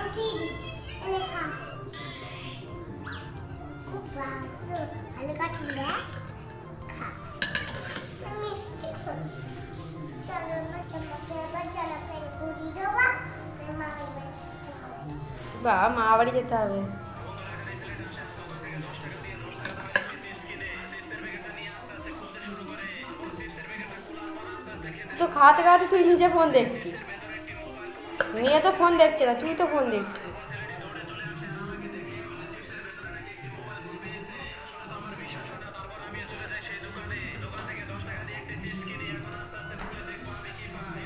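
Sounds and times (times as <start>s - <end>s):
spoon clinking in a bowl: 5.5s - 6.3s, 7.4s - 8.2s, 19.5s - 20.4s, 28.1s - 28.8s, 30.1s - 30.5s.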